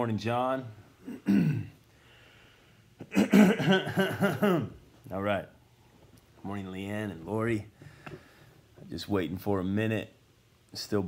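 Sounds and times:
man clearing throat: 0:01.0 - 0:01.8, 0:03.0 - 0:04.8
man coughing: 0:01.0 - 0:01.8, 0:03.0 - 0:04.8.

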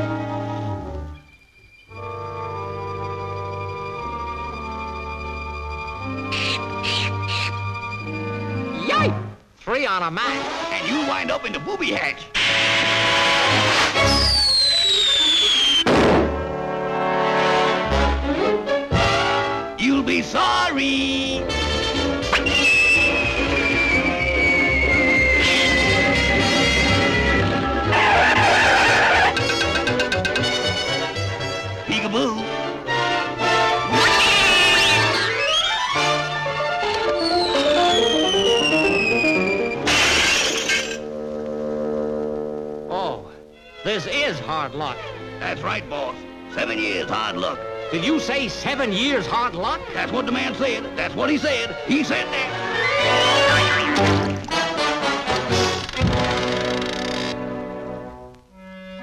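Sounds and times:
orchestral music: 0:00.0 - 0:09.4, 0:10.0 - 0:14.4, 0:16.0 - 0:56.5
falling whistle: 0:14.0 - 0:15.9, 0:22.3 - 0:29.4, 0:33.9 - 0:36.3, 0:37.0 - 0:39.9
firework bang: 0:15.0 - 0:16.4
glass shattering: 0:39.8 - 0:41.1.

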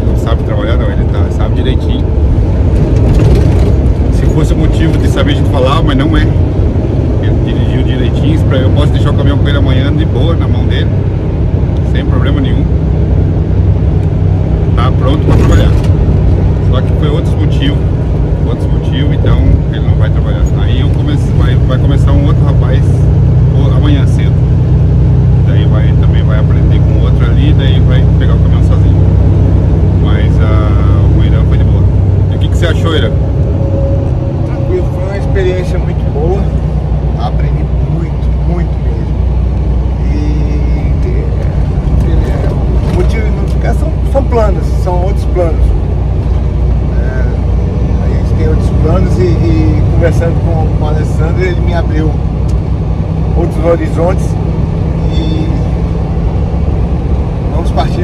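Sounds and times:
man talking: 0:00.0 - 0:02.1, 0:04.1 - 0:06.4, 0:07.2 - 0:11.0, 0:11.8 - 0:12.8, 0:14.7 - 0:15.9, 0:16.6 - 0:24.4, 0:25.4 - 0:29.1, 0:30.0 - 0:33.2, 0:34.4 - 0:39.2, 0:40.0 - 0:45.8, 0:46.9 - 0:52.2, 0:53.3 - 0:54.4, 0:57.5 - 0:58.0
truck engine and road noise: 0:00.0 - 0:58.0.

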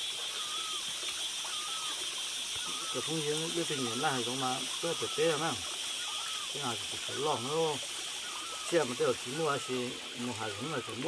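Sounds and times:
running water: 0:00.0 - 0:11.0
high-pitched drone: 0:00.1 - 0:11.0
faint whistled notes: 0:00.3 - 0:02.0.

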